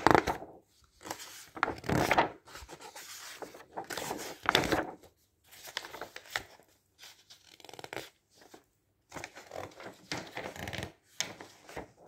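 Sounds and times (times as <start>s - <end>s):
magazine pages turning: 0.0s - 12.0s.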